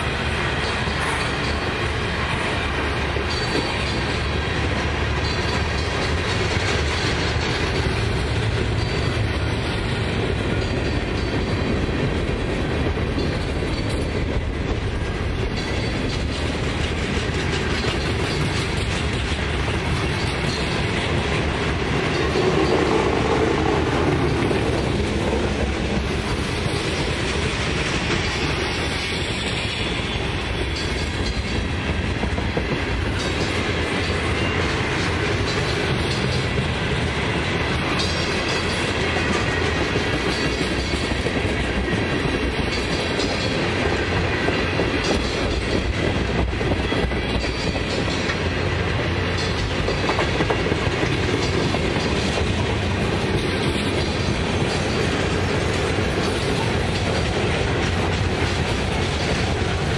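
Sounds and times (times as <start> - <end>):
steel wheels clattering on rails: 0.0 - 59.9
wheels clacking over rail joints: 0.0 - 59.9.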